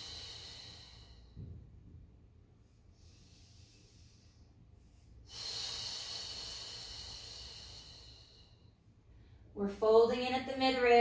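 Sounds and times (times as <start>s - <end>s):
woman breathing: 0.0s - 10.0s.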